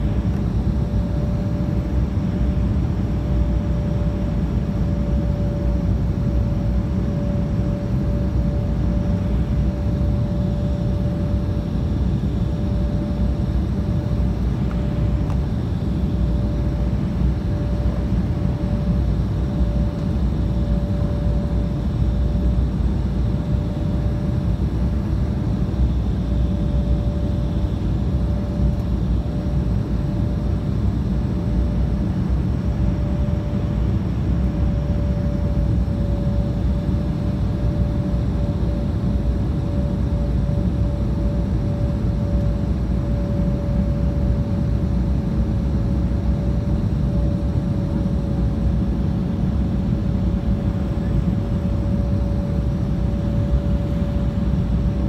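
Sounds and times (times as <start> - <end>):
constant hum-like tone: 0.0 - 55.0
jet engine and airflow noise: 0.0 - 55.0.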